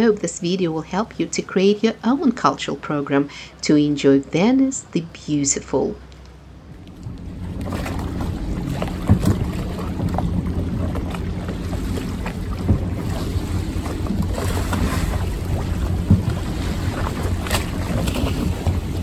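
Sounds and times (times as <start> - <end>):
water lapping around boats: 0.0 - 19.0
wind buffeting microphone: 6.6 - 19.0
sharp knocks: 8.8 - 10.3, 12.6 - 13.0.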